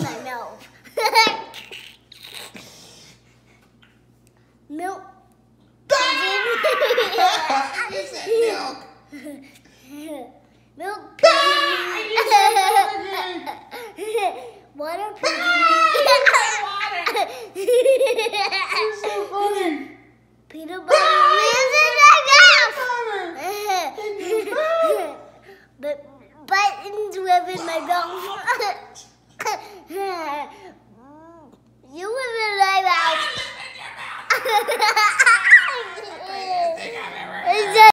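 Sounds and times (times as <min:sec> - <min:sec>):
toddler laughing: 0:00.9 - 0:02.6, 0:06.1 - 0:09.3, 0:11.9 - 0:14.5, 0:15.2 - 0:19.5, 0:27.5 - 0:30.4, 0:32.6 - 0:37.9.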